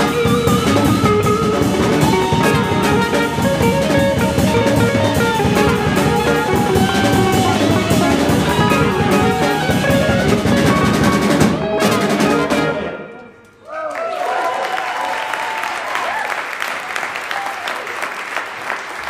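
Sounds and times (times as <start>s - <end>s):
drum kit: 0.0s - 12.9s
upright bass: 0.0s - 13.0s
electric guitar: 0.0s - 13.2s
saxophones and trumpets: 0.0s - 13.4s.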